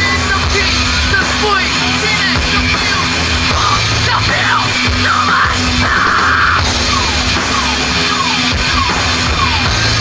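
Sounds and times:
amplified electric guitars: 0:00.0 - 0:10.0
drum kit: 0:00.0 - 0:10.0.

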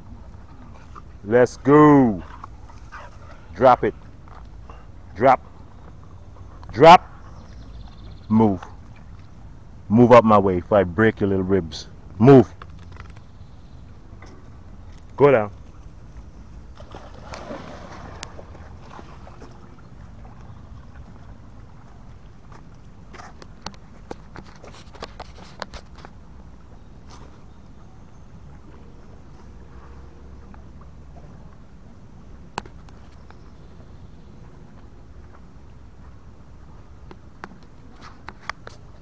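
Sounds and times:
dog splashing into water: 0:16.7 - 0:19.7.

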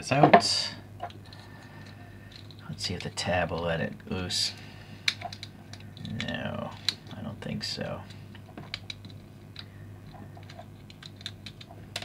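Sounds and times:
fingernails clicking on plastic toy: 0:10.3 - 0:11.7.

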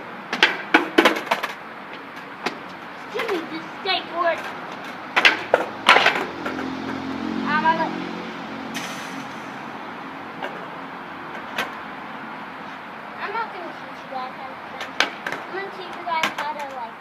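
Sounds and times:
skateboard wheels rolling: 0:00.0 - 0:07.3, 0:12.6 - 0:17.0
skateboard clacking on concrete: 0:00.3 - 0:07.0, 0:11.3 - 0:11.8, 0:14.7 - 0:17.0.

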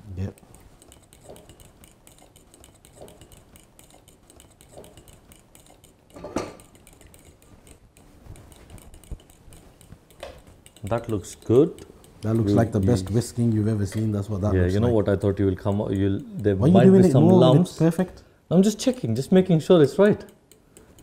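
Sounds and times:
whisk beating in a bowl: 0:00.3 - 0:16.6, 0:18.6 - 0:21.0.

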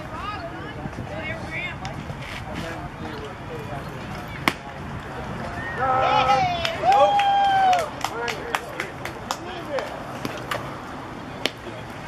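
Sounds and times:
people calling out: 0:05.5 - 0:08.0.

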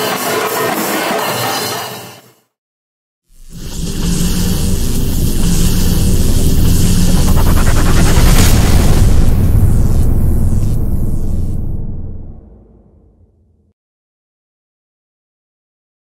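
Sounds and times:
high hissing layer: 0:03.3 - 0:11.6
low rumble and drone: 0:03.6 - 0:13.2
sharp hit: 0:03.8 - 0:13.5.

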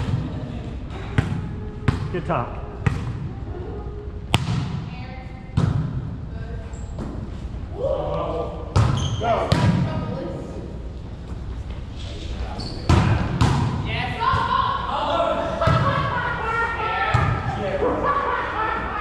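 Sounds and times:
players shouting: 0:13.9 - 0:19.0.

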